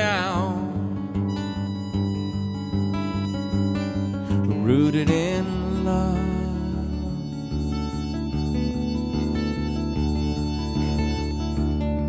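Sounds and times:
harmonica playing held notes: 0.0 - 12.0
strummed acoustic guitar: 0.0 - 12.0.

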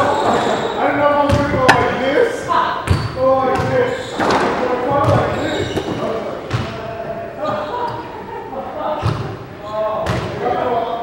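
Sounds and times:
squash ball knocking on court: 1.3 - 2.0.

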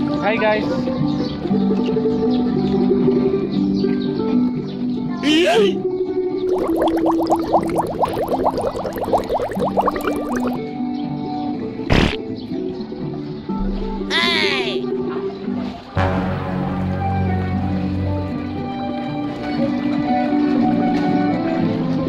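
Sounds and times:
background music with held notes: 14.9 - 22.0.

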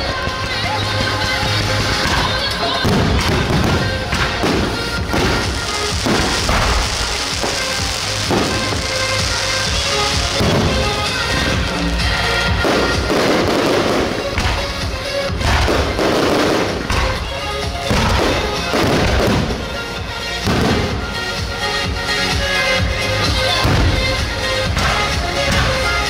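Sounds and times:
fireworks bursting: 0.0 - 26.0
music playing: 0.0 - 26.0.

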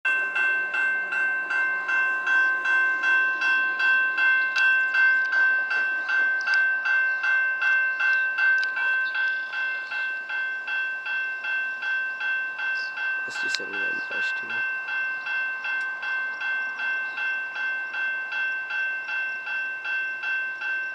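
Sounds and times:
railway crossing bell ringing: 0.0 - 20.9.

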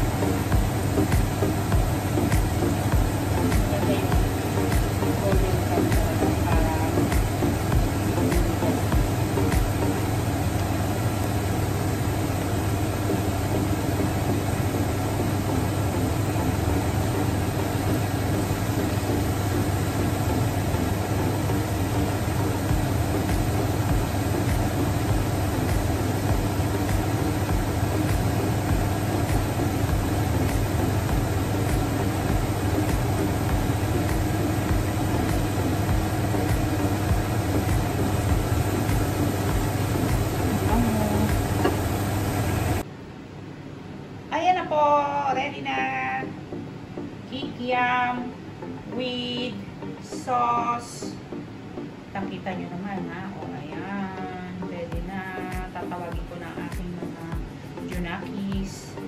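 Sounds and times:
food sizzling in hot oil: 0.0 - 42.8
low hum: 0.0 - 43.1.

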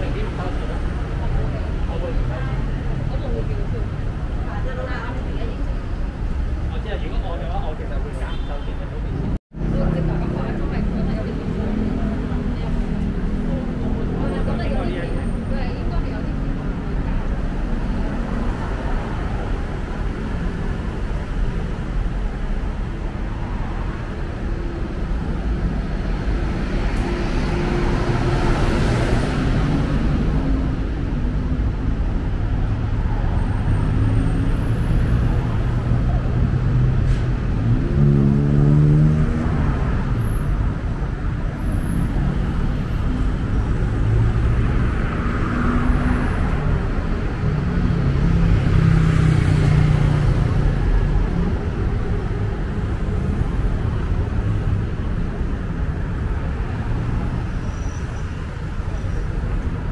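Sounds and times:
road traffic passing: 0.0 - 59.9.

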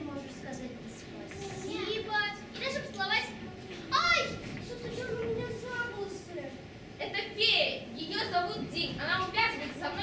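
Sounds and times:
children speaking: 0.0 - 10.0.

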